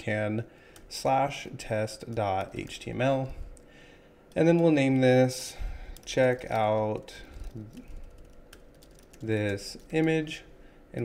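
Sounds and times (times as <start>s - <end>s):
keyboard typing: 5.9s - 10.4s.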